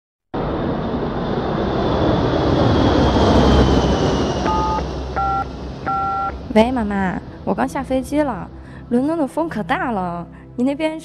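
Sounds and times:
jet engine whine: 0.4 - 8.9
telephone keypad tones: 4.5 - 6.3.

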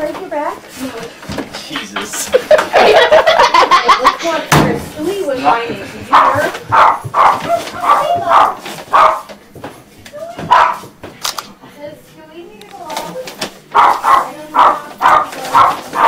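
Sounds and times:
hearty laughter: 2.2 - 4.4.

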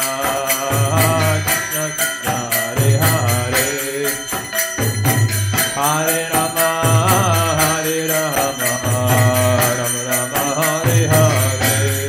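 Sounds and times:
hand cymbals struck rapidly: 0.0 - 12.0
hand drum: 0.0 - 12.0.

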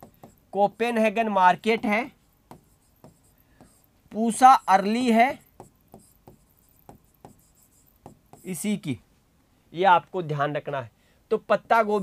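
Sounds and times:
marker pen writing on whiteboard: 0.0 - 9.0.

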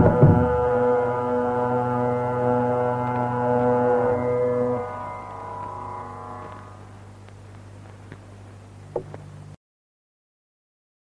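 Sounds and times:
drum strokes: 0.0 - 1.1
long sustained sung note: 0.0 - 7.2
steady drone: 0.0 - 8.0.

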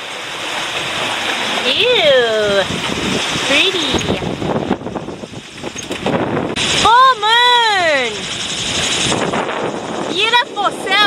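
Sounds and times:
water rushing past boat: 0.0 - 11.0
wind buffeting microphone: 0.0 - 11.0.

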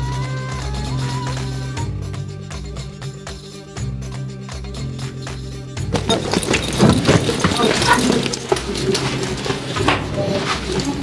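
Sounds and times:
footsteps on wooden stairs: 5.9 - 11.0
indistinct voices: 5.9 - 11.0.

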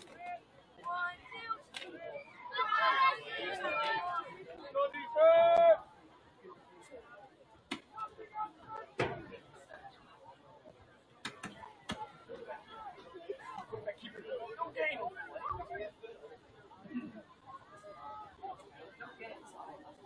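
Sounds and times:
spectators chattering: 0.0 - 20.0.

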